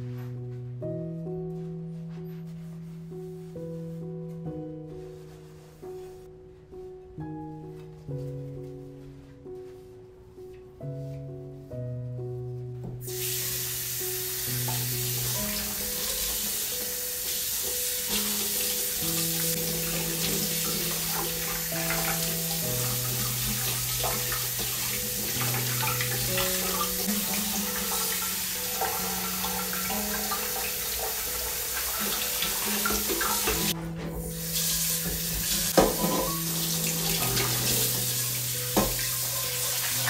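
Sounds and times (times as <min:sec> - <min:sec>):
tap running into steel sink: 0:34.9 - 0:36.4, 0:38.7 - 0:39.2
dishes clinking: 0:35.7 - 0:36.5.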